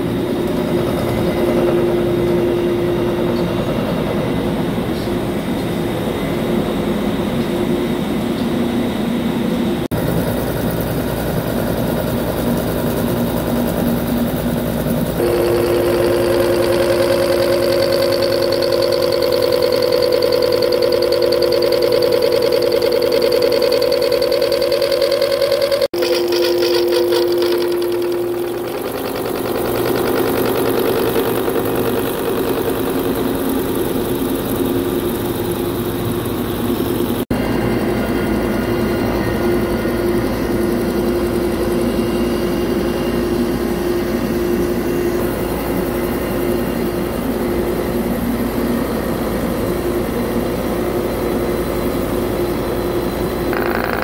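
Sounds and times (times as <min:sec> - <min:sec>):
high machine whine: 0:00.0 - 0:54.0
milling machine cutting steel: 0:15.2 - 0:37.2, 0:53.5 - 0:54.0.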